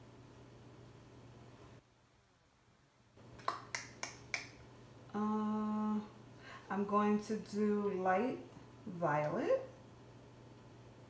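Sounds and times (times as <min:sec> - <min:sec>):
woman humming: 0:05.1 - 0:06.1.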